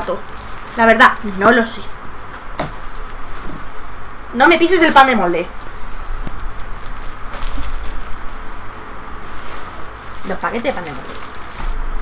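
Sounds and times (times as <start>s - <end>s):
plastic bread wrapper crinkling: 0.0s - 1.4s, 5.5s - 8.5s, 9.1s - 12.0s
low steady hum: 0.0s - 12.0s.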